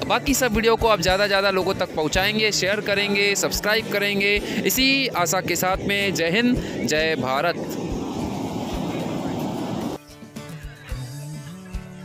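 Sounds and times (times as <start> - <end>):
murmur of voices: 0.0 - 11.2
wind on microphone: 1.8 - 10.0.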